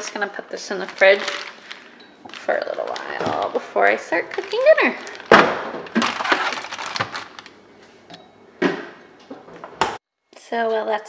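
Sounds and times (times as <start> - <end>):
plastic bag rustling: 0.0 - 8.0.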